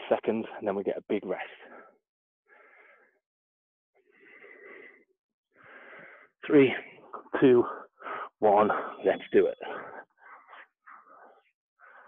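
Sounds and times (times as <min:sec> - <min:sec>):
man breathing hard: 0:01.7 - 0:03.2, 0:04.0 - 0:06.4, 0:07.7 - 0:09.0, 0:09.6 - 0:12.0.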